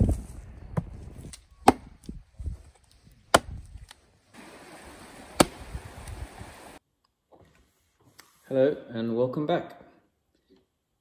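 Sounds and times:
axe chopping into wood: 0:01.6 - 0:02.0, 0:03.3 - 0:03.6, 0:05.4 - 0:05.7.

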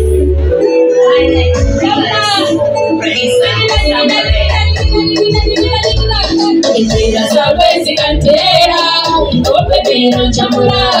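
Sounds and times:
amplified backing music with bass: 0:00.0 - 0:11.0
woman singing into microphone: 0:00.0 - 0:11.0.

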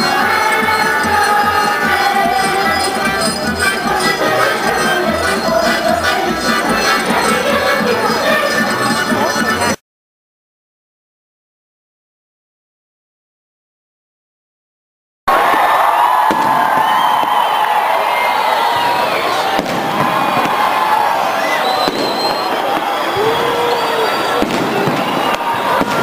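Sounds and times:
crowd shouting and cheering: 0:00.0 - 0:09.8, 0:15.3 - 0:26.0
fireworks bangs: 0:15.4 - 0:26.0.

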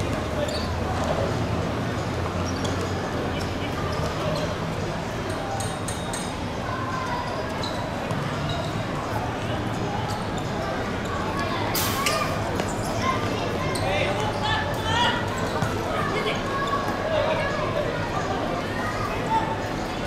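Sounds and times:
players calling and shouting: 0:00.0 - 0:20.0.

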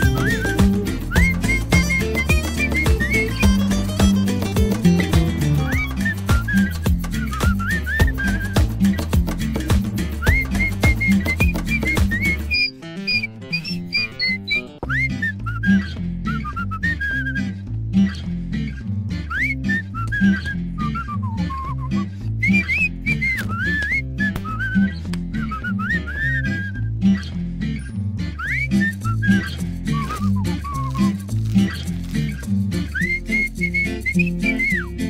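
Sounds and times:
whistled melody: 0:00.0 - 0:17.6, 0:19.3 - 0:26.9, 0:28.4 - 0:35.0
bass line: 0:00.0 - 0:35.0
guitar: 0:00.0 - 0:35.0.

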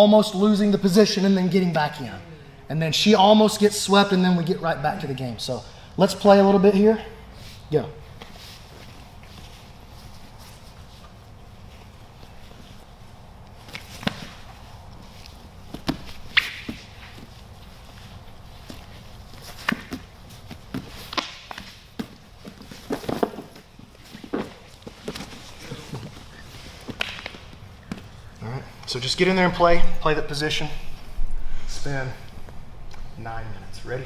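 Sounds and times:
bodies thudding on foam mats: 0:15.5 - 0:18.0, 0:18.6 - 0:28.2.

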